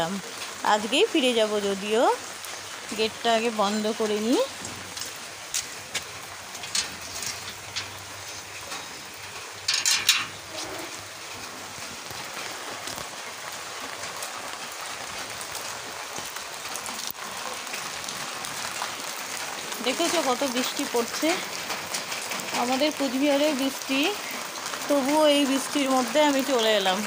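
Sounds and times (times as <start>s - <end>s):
steady rain falling: 0.0s - 27.0s.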